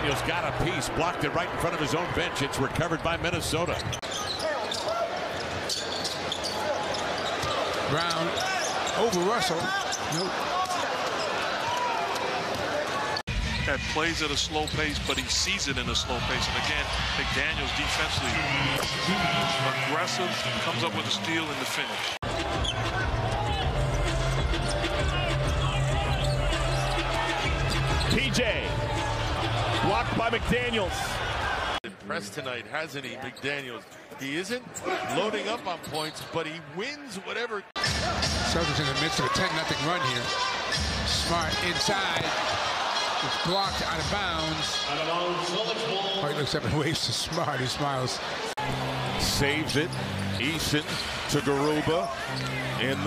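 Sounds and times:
crowd noise: 0.0s - 53.0s
sneakers squeaking: 3.3s - 13.2s, 22.0s - 28.4s, 49.9s - 53.0s.

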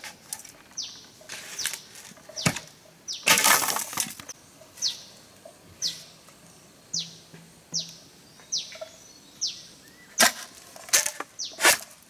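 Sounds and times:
machete scraping bamboo: 0.0s - 4.2s, 10.2s - 12.0s.

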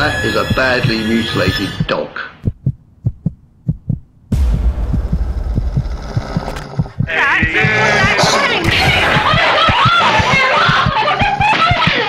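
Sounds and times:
heartbeat thumps: 0.0s - 12.0s
low rumbling drone: 4.3s - 7.1s.

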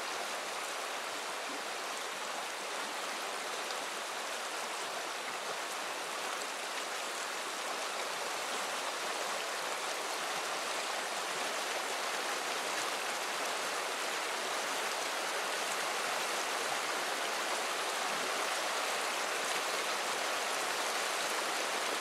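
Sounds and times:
river rushing over rocks: 0.0s - 22.0s.

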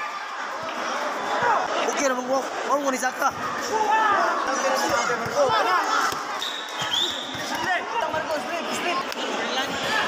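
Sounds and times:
spectators talking and shouting: 0.0s - 10.0s.

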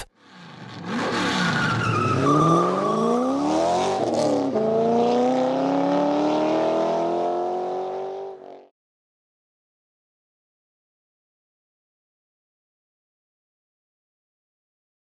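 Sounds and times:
vehicle engine revving: 2.1s - 8.7s.

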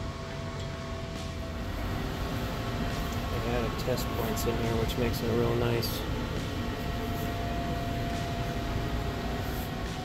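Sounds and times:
faint steady whine: 0.0s - 10.0s
machinery hum and hiss: 0.0s - 10.0s.

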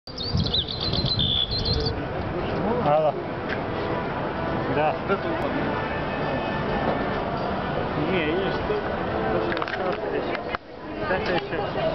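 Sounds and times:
small birds chirping: 0.1s - 2.0s.

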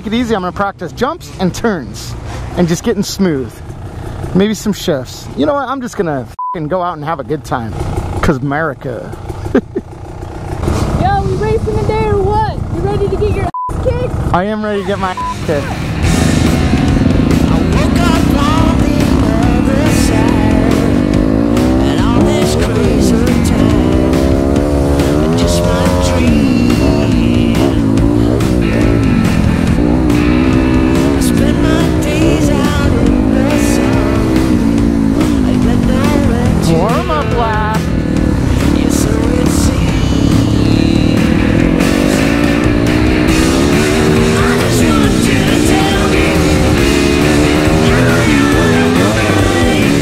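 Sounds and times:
dirt bike engine revving: 7.0s - 50.0s
music playing: 12.2s - 50.0s.

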